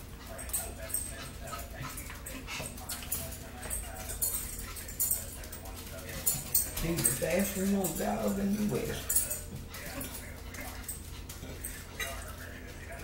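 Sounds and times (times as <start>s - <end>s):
forks clinking against plates: 0.0s - 13.0s.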